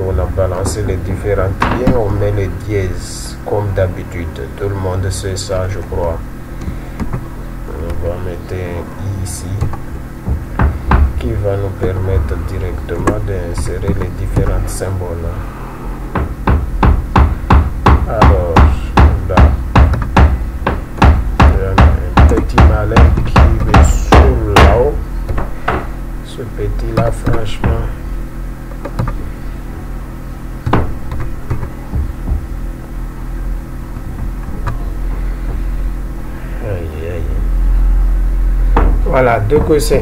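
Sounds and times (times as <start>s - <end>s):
deep rhythmic thumping: 0.0s - 40.0s
steady electrical hum: 0.0s - 40.0s
keyboard keystrokes: 28.8s - 29.2s.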